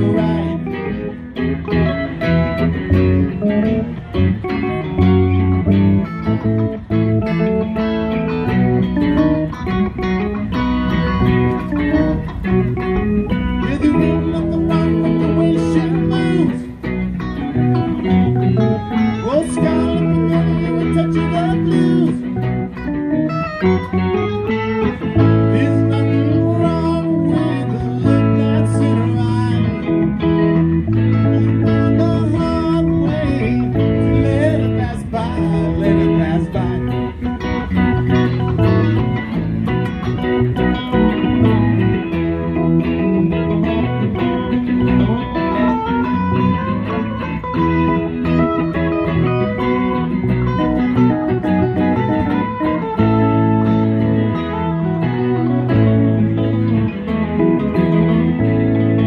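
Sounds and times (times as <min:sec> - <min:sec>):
bass guitar: 0:00.0 - 0:59.0
electric guitars: 0:00.0 - 0:59.0
electric keyboard: 0:00.0 - 0:59.0.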